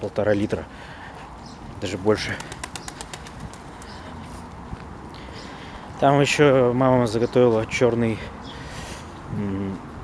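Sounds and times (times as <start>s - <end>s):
pigeons cooing: 2.2s - 4.3s.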